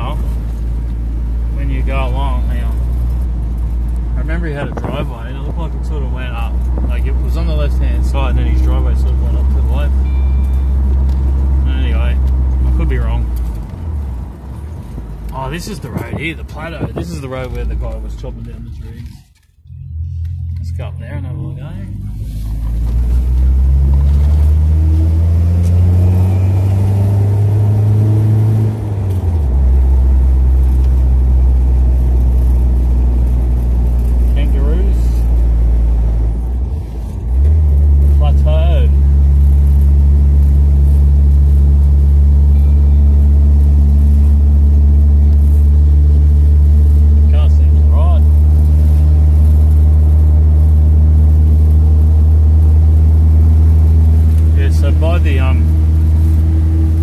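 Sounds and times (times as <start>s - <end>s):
car engine drone from inside cabin: 0.0s - 57.0s.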